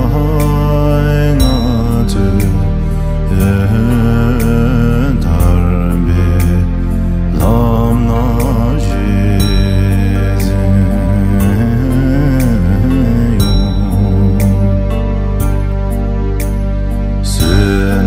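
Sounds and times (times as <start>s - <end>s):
person chanting prayer song: 0.0s - 15.3s, 17.2s - 18.0s
low drone: 0.0s - 18.0s.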